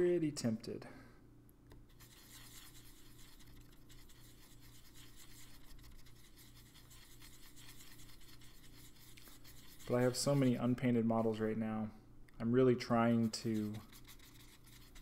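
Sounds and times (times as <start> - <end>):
paintbrush scratching in palette: 1.8 - 11.6, 12.9 - 15.0.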